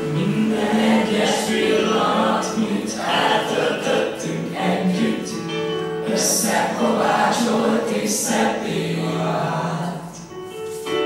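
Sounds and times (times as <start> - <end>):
choir singing sustained notes: 0.0 - 10.3.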